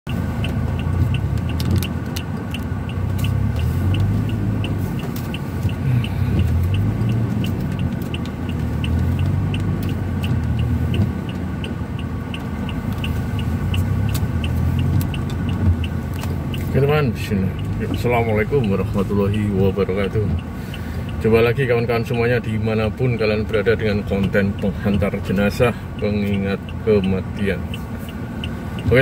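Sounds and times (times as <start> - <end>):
car engine running: 0.1 - 29.0
indicator ticking: 0.1 - 29.0.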